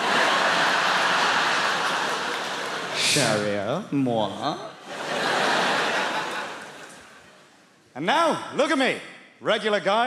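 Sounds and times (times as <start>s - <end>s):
audience laughing: 0.0s - 3.4s, 4.8s - 7.6s.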